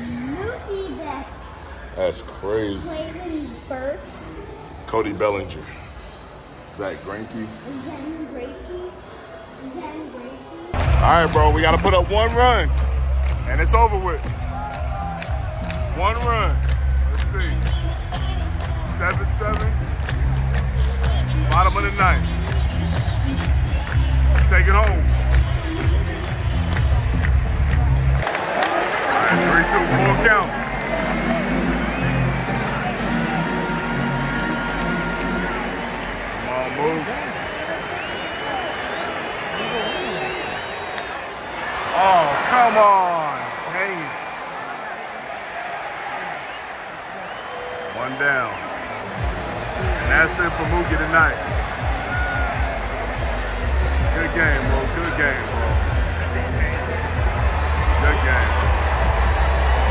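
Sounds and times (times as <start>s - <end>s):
stadium crowd noise: 0.0s - 59.9s
music over stadium loudspeakers: 10.8s - 40.9s, 45.9s - 59.9s.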